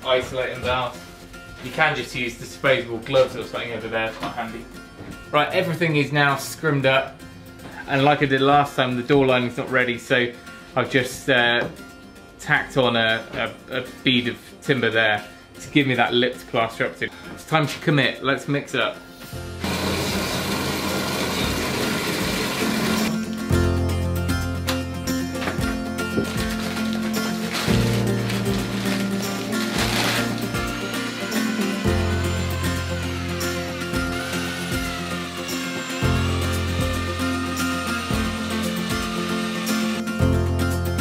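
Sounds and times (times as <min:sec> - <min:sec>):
drill with paddle mixer in bucket: 0:19.6 - 0:23.2, 0:26.2 - 0:40.1
background music with bass line: 0:21.0 - 0:41.0.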